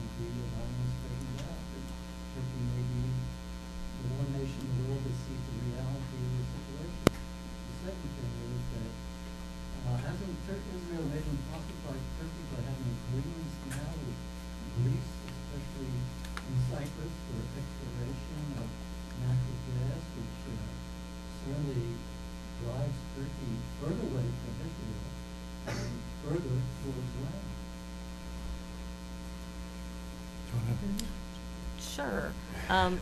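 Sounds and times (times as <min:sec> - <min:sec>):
electrical mains hum: 0:00.0 - 0:33.0
faint indistinct speech: 0:00.1 - 0:03.2, 0:04.0 - 0:07.0, 0:07.7 - 0:08.9, 0:09.8 - 0:20.7, 0:21.4 - 0:22.0, 0:22.6 - 0:25.1, 0:25.7 - 0:27.5, 0:30.5 - 0:31.2.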